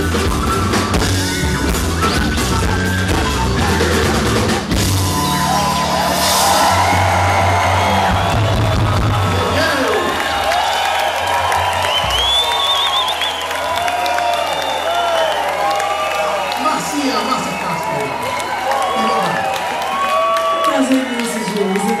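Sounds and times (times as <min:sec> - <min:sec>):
crowd cheering and whooping: 0:00.0 - 0:22.0
crowd whistling: 0:00.0 - 0:22.0
live band playing: 0:00.0 - 0:22.0.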